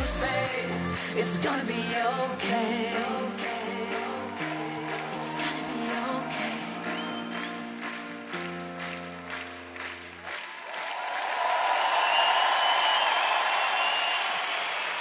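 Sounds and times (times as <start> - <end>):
audience applauding: 2.5 - 15.0.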